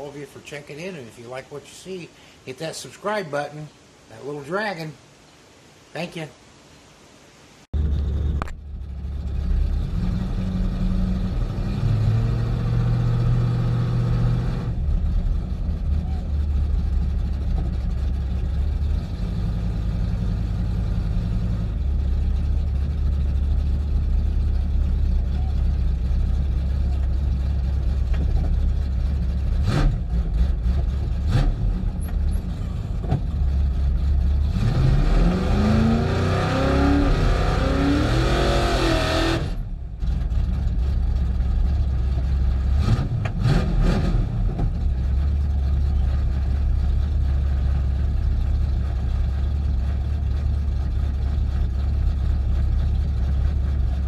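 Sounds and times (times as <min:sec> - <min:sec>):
car engine idling and revving: 0:07.8 - 0:54.0.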